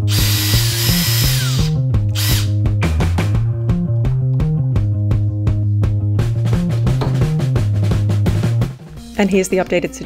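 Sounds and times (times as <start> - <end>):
cordless drill whining: 0.0 - 2.5
background music with steady beat: 0.0 - 10.0.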